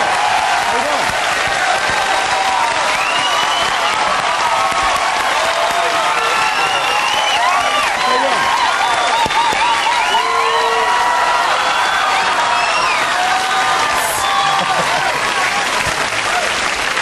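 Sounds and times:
people whooping and shouting: 0:00.0 - 0:16.6
audience applauding: 0:00.0 - 0:17.0.

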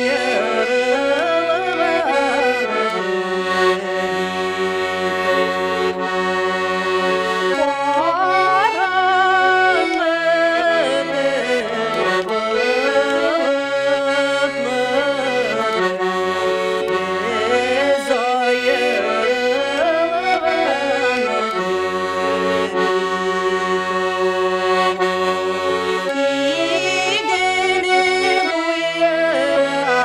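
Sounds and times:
button accordion chords: 0:00.0 - 0:30.0
woman singing: 0:07.6 - 0:15.3, 0:26.5 - 0:30.0.

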